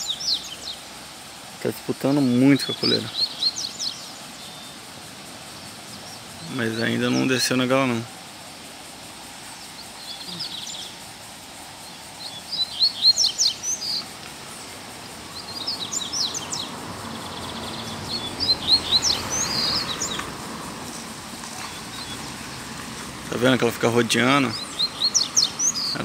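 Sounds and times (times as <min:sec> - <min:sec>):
birds twittering song: 0:00.0 - 0:26.0.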